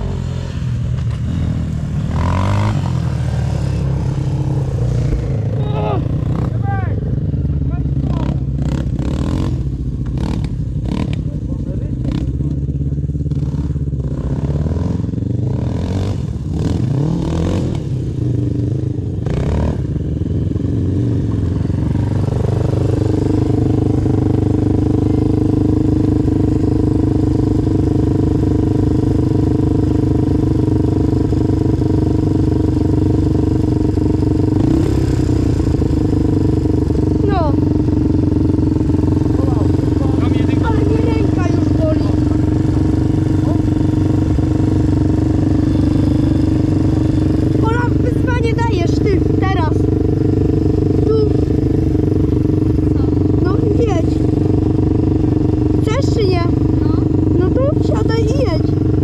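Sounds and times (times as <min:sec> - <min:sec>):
distant quad engines on track: 0:00.0 - 0:59.0
quad engine idling: 0:00.0 - 0:59.0.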